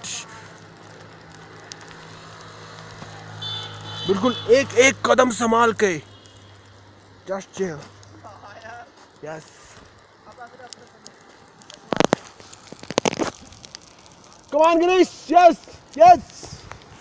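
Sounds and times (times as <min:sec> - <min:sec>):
footsteps crunching on gravel: 0:11.2 - 0:14.5.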